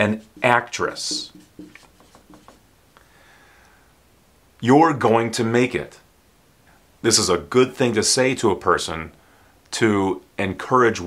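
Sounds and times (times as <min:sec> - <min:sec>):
marker scratching on whiteboard: 0:00.0 - 0:02.6.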